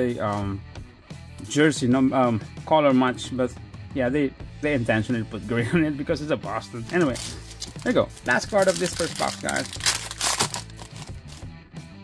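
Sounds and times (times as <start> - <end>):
background music: 0.0 - 12.0
foil wrapper crinkling: 6.9 - 11.5.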